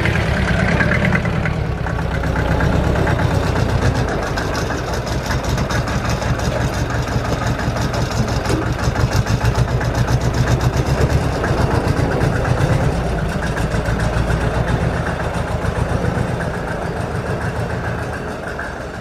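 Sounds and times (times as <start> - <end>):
diesel tractor engine running: 0.0 - 19.0.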